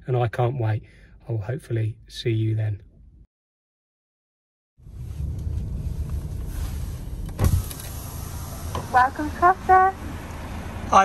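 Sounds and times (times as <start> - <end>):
car electric window motor: 5.3 - 10.8
thump: 7.3 - 7.9.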